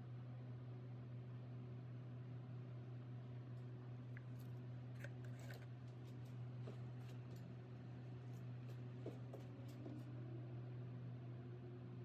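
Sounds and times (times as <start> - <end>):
steady low hum: 0.0 - 12.0
spatula scraping plastic cup: 5.0 - 5.7.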